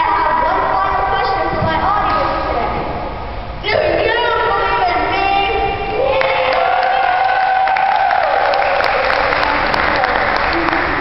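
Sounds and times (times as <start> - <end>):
boy's raised voice echoing: 0.0 - 3.0, 3.6 - 7.6.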